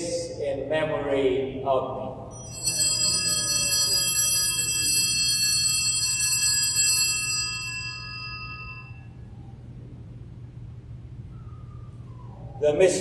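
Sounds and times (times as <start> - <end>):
altar bells ringing: 2.3 - 9.2.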